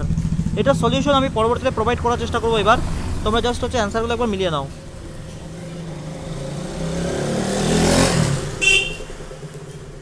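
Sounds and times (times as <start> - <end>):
vehicle passing by: 0.0 - 8.6.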